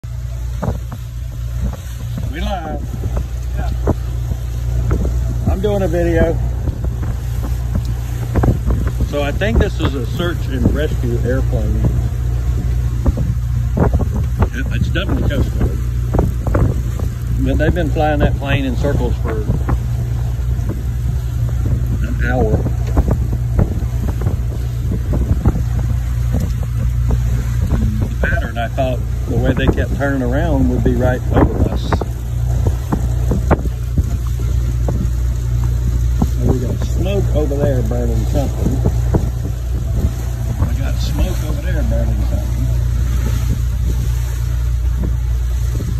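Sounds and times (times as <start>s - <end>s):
boat engines droning: 0.0s - 45.9s
hull thumping on water: 0.0s - 45.9s
wind buffeting microphone: 0.0s - 45.9s.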